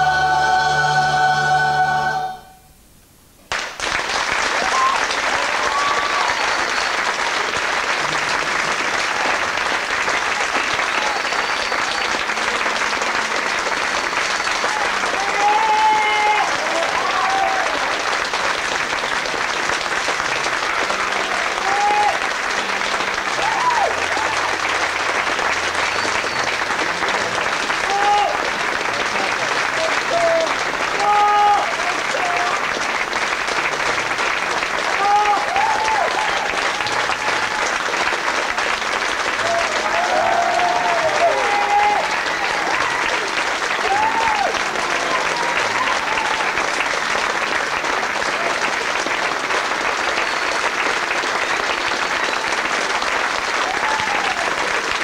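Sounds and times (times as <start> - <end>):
audience applauding: 3.5 - 55.0
whoops and cheers: 4.5 - 7.0, 14.6 - 18.0, 21.2 - 22.3, 23.3 - 24.6, 27.8 - 28.4, 29.8 - 32.6, 34.9 - 37.8, 39.3 - 46.7, 53.6 - 54.7.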